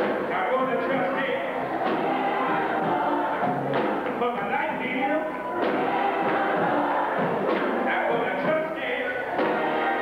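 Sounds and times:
choir and congregation singing: 0.0s - 10.0s.

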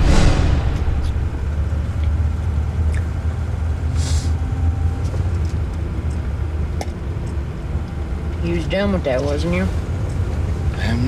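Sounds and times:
vehicle rumble from inside cab: 0.8s - 11.0s
brief hiss: 4.0s - 4.4s.

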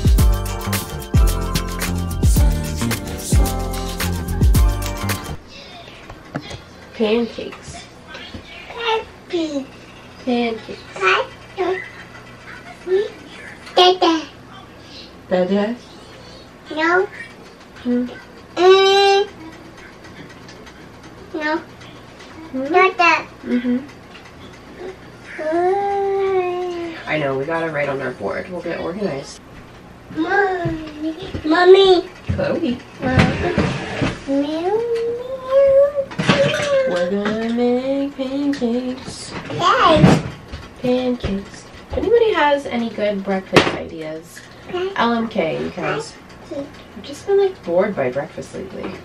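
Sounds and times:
toddler babbling: 24.8s - 27.0s, 30.2s - 32.0s, 34.5s - 37.1s
dishes clattering: 36.1s - 37.4s.

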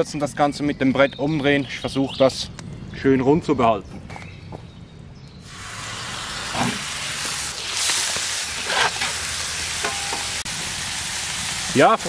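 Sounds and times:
meat sizzling on griddle: 5.4s - 12.0s.

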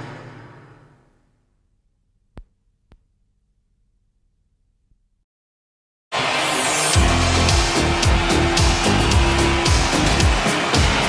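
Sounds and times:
synth-pop dance music: 6.2s - 11.0s
electronic kick drum and hi-hats: 7.0s - 11.0s.

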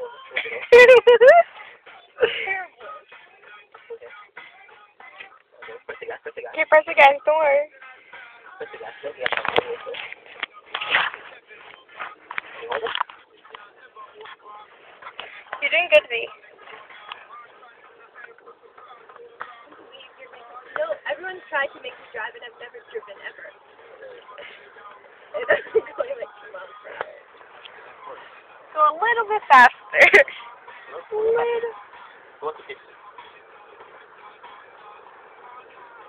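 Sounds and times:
car interior driving noise: 4.3s - 36.0s
faint indistinct voices: 7.6s - 36.0s.

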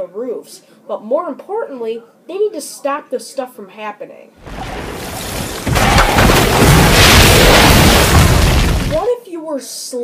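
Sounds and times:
loud rumbling crash: 4.4s - 9.1s.

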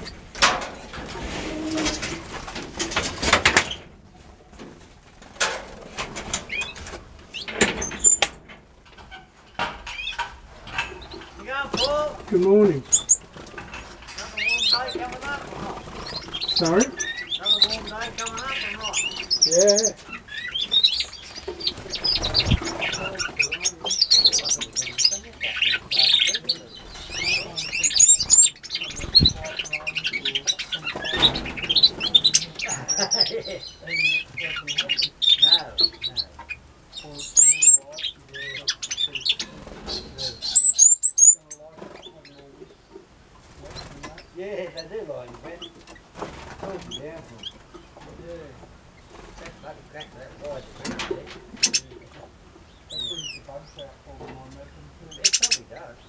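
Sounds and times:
finches chirping and twittering: 6.2s - 43.0s, 43.6s - 56.0s.

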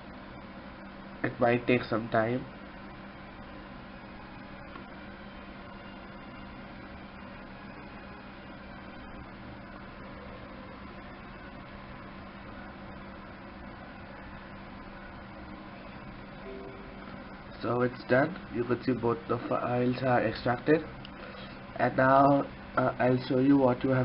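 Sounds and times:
constant low hum: 0.0s - 24.0s.

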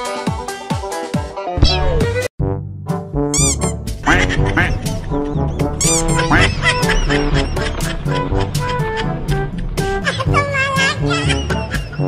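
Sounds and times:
background music: 0.0s - 12.0s
ducks quacking: 4.0s - 12.0s.

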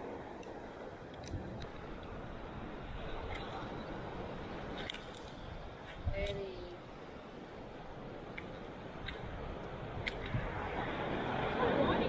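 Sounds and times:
surf washing: 0.0s - 12.0s
wind: 0.0s - 12.0s.

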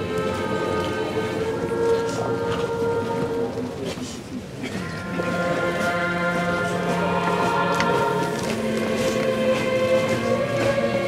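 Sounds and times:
choir singing a hymn: 0.0s - 4.0s, 4.6s - 11.0s.

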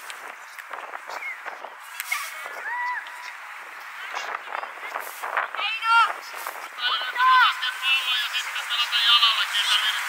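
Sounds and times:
children shouting: 2.1s - 3.4s.

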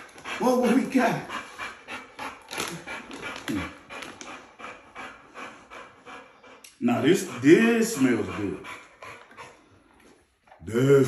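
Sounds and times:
dog panting: 0.0s - 10.6s.

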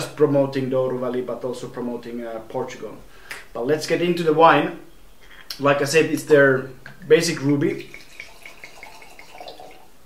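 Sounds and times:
liquid pouring into glass: 7.7s - 10.0s.

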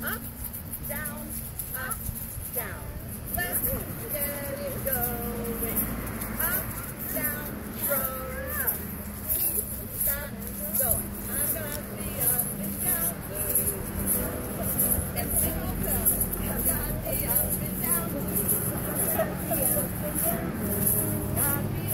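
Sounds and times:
egg shakers rattling: 0.0s - 21.9s
voices of children and adults: 0.0s - 21.9s.

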